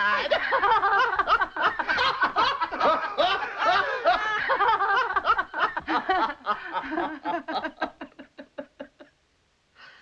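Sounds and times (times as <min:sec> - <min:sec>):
man and women laughing: 0:00.0 - 0:09.1.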